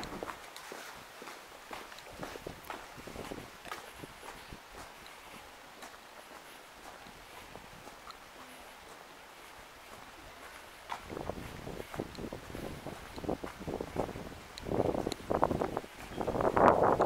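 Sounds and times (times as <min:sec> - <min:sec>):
wind buffeting microphone: 0:00.0 - 0:05.9, 0:07.0 - 0:17.0
walking footsteps: 0:00.0 - 0:17.0.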